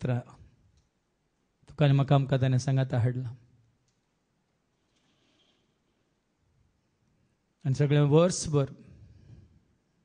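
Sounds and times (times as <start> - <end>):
man praying into a microphone: 0.0 - 0.5, 1.7 - 3.5, 7.6 - 9.0.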